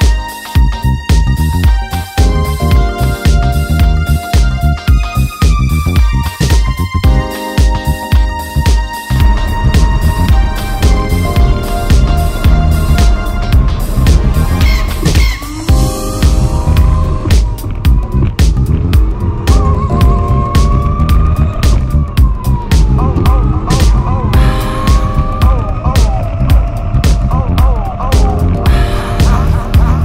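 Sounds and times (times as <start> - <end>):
music with steady beat: 0.0 - 30.0.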